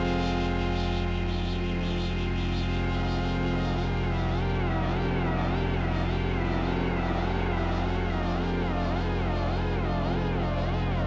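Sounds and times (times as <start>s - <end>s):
synthesizer low wobbling drone: 0.0s - 11.0s.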